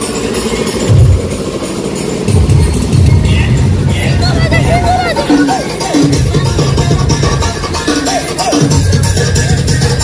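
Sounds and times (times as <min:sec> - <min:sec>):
loud dance music with bass beats: 0:02.3 - 0:10.0.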